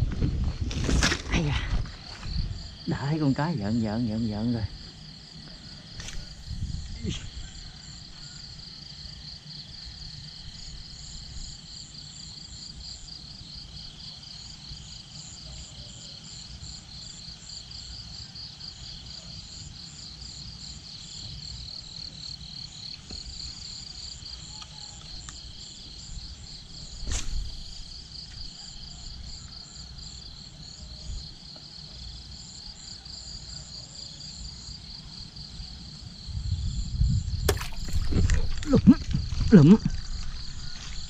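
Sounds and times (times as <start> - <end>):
insects trilling: 0.0 - 41.0.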